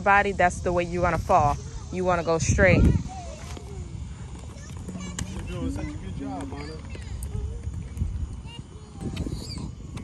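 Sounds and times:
wheels rolling on asphalt: 0.0s - 10.0s
faint children's voices: 1.3s - 10.0s.

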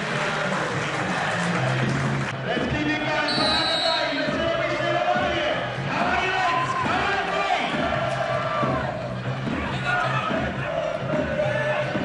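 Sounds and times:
crowd voices: 0.0s - 12.0s
referee's whistle blast: 3.3s - 4.3s.

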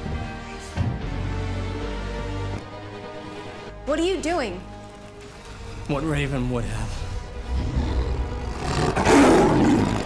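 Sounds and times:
beast-like roar: 7.4s - 10.0s.

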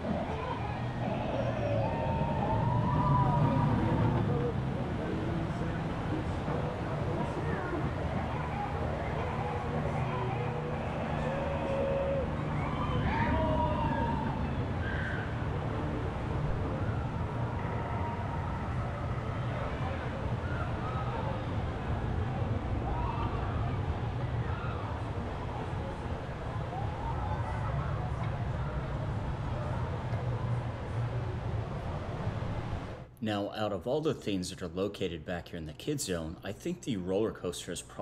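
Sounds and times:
faint high voices: 0.0s - 31.4s
roller coaster rumbling on track: 0.0s - 33.1s.

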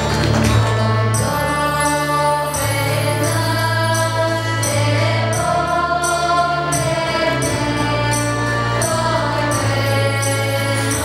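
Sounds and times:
girls' choir singing: 0.0s - 11.0s.

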